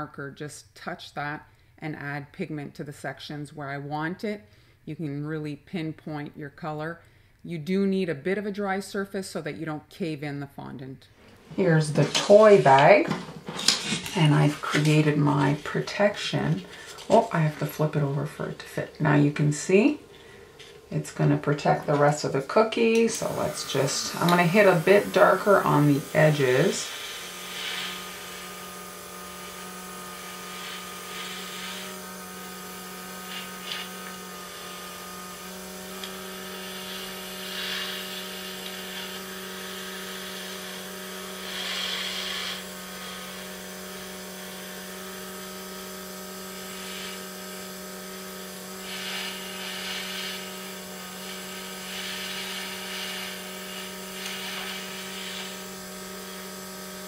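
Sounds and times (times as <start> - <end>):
compressor humming: 11.2 - 57.0
airbrush spraying hiss: 22.8 - 57.0.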